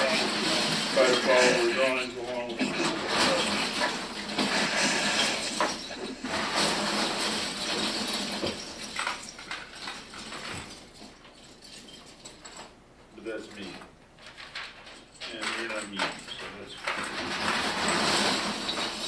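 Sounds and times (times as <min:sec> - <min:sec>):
parts and tools rattling: 0:00.0 - 0:12.8, 0:13.4 - 0:19.0.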